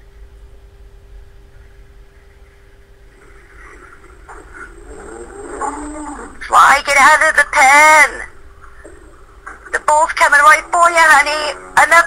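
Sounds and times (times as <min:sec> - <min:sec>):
faint indistinct sounds: 0:00.0 - 0:12.0
steady hum: 0:00.0 - 0:12.0.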